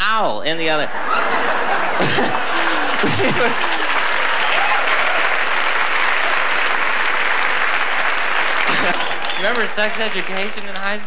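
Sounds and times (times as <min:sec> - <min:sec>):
audience laughter: 0:00.9 - 0:05.3, 0:08.4 - 0:09.8
audience applauding: 0:01.0 - 0:11.0.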